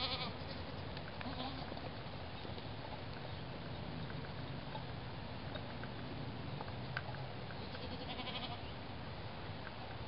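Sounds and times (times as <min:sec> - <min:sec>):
goat bleating: 0:00.0 - 0:00.6, 0:01.2 - 0:01.8, 0:07.6 - 0:08.7
low background rumble: 0:00.0 - 0:10.0.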